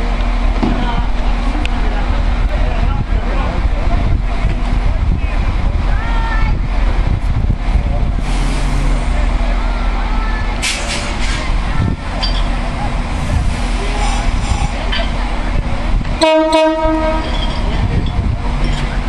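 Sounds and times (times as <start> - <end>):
train diesel engine idling: 0.0 - 19.0
short air hisses: 8.2 - 9.1, 10.6 - 11.5.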